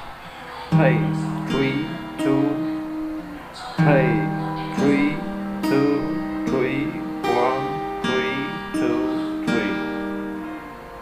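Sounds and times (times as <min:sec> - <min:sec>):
fingerpicked acoustic guitar: 0:00.0 - 0:11.0.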